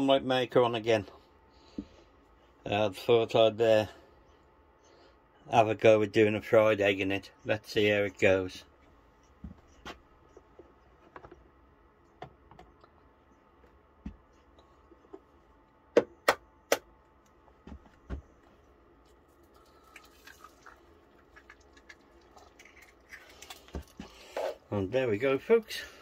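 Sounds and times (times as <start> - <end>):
egg cracking taps: 19.9 - 24.1.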